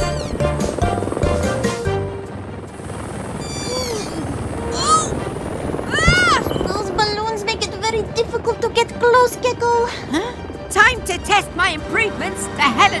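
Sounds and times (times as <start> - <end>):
background music: 0.0 - 2.9, 4.2 - 13.0
cartoon helicopter rotor: 0.0 - 9.7
short squeaky calls: 3.4 - 4.2.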